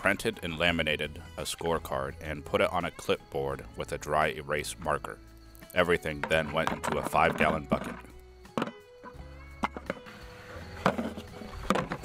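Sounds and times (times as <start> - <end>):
plucked guitar music: 5.6 - 10.1.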